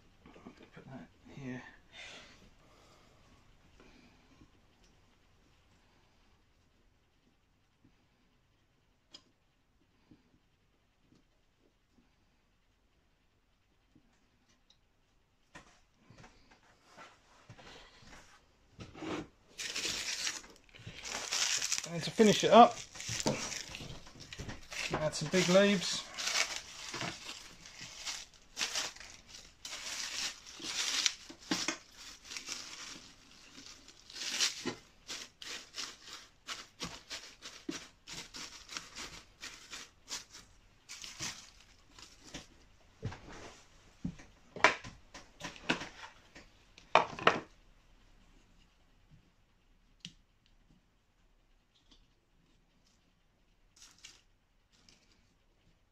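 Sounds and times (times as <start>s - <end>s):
hands rustling dry leaves: 19.5s - 42.2s.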